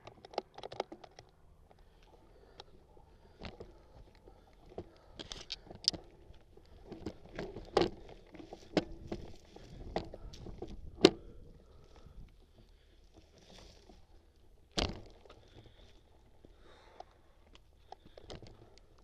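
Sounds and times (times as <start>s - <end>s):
bicycle rattling on dirt trail: 0.0s - 19.0s
tyre crunching leaves and twigs: 1.6s - 19.0s.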